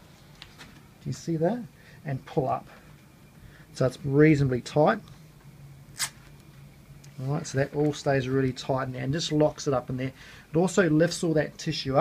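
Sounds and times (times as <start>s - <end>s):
strapping tape ripping: 6.0s - 6.2s.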